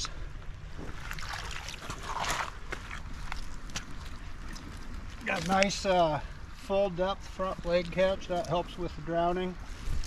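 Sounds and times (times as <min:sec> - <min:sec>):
rustling and scraping on wet gravel: 0:00.7 - 0:10.0
water trickling: 0:00.8 - 0:08.9.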